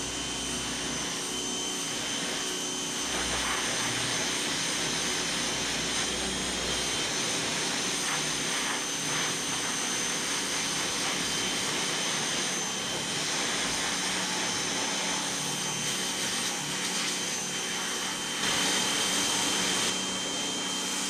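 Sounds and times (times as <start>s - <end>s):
pressure washer whine: 0.0s - 21.0s.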